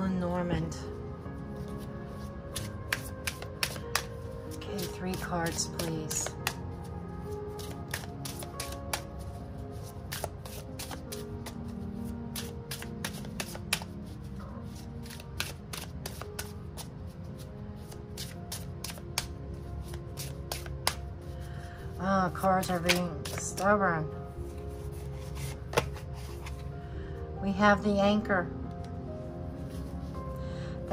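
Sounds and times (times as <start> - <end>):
soft background music: 0.0 - 30.9
cards being shuffled: 1.6 - 6.7, 7.5 - 14.1, 14.7 - 16.9, 17.8 - 21.0, 22.6 - 23.7, 24.5 - 26.7.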